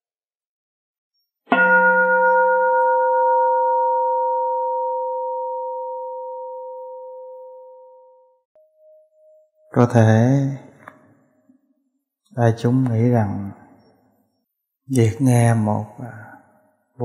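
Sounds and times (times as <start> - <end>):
bowl bell struck and ringing: 1.5 - 9.4.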